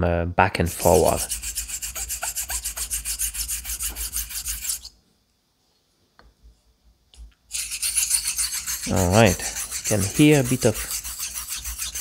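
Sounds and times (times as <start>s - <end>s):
razor rasping on sharpening plate: 0.7s - 4.9s, 7.5s - 12.0s.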